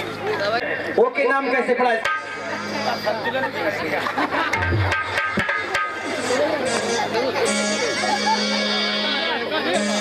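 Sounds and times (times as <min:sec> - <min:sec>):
musical instruments: 0:01.9 - 0:10.0
deep hand-drum stroke: 0:04.5 - 0:06.5.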